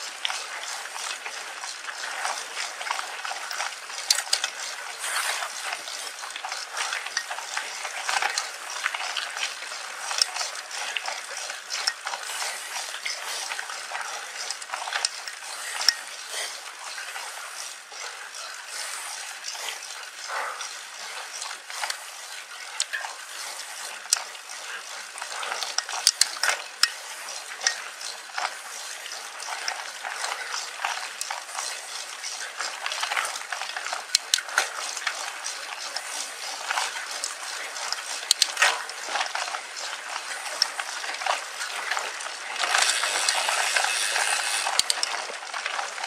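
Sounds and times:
bike tyres crunching on dirt: 0.0s - 20.6s, 21.2s - 46.0s
grit and bike rattling: 0.0s - 46.0s.

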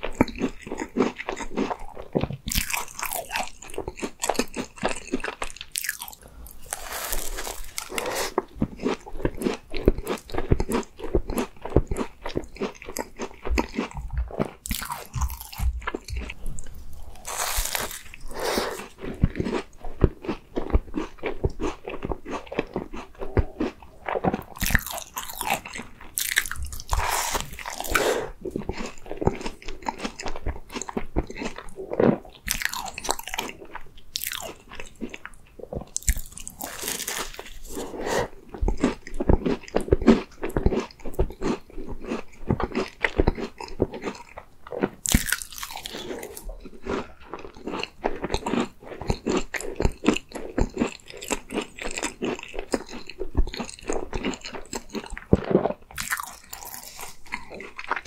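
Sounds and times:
chewing: 0.0s - 58.0s
crunching pastry bites: 0.1s - 28.0s, 28.6s - 37.8s, 38.6s - 58.0s.

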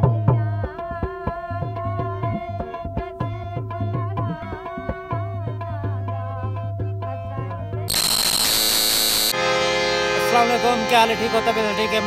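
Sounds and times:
tabla and harmonium folk music: 0.0s - 7.9s, 9.4s - 12.0s
buzzing hiss with high whistle: 7.9s - 9.4s.

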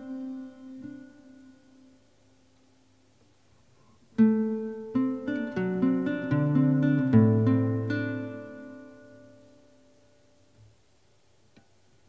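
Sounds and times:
classical guitar chords: 0.0s - 2.5s, 4.1s - 10.6s
fingerpicked guitar notes: 0.0s - 2.6s, 4.1s - 10.4s.

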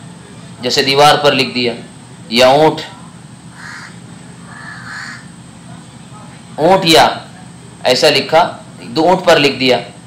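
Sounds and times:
crow cawing faintly: 3.5s - 5.4s.

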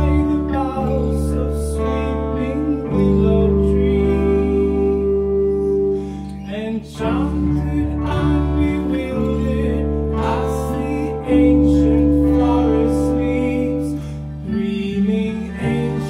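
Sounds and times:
acoustic and electric guitars: 0.0s - 16.0s
held keyboard chords: 0.0s - 16.0s.

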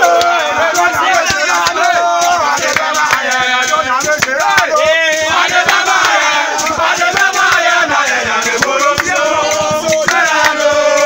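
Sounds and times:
men chanting and singing: 0.0s - 11.0s
steady percussive beat: 0.0s - 11.0s.

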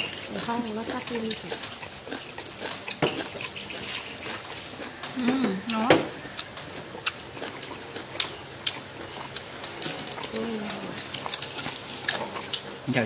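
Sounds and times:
chopsticks tapping dishes: 0.0s - 8.4s
crunchy food being chewed: 0.0s - 13.0s.

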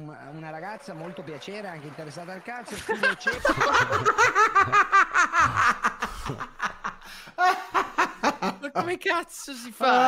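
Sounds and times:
men laughing loudly: 2.7s - 8.8s.

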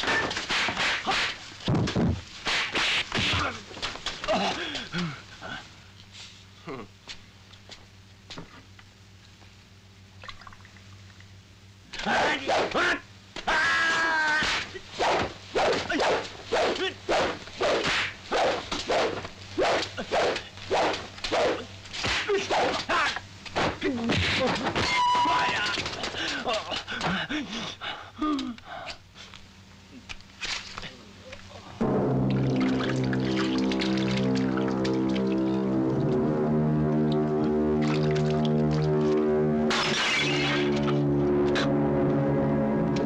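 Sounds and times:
shouted grunts: 12.0s - 14.5s, 25.0s - 27.5s
heavy hits: 31.8s - 38.0s.

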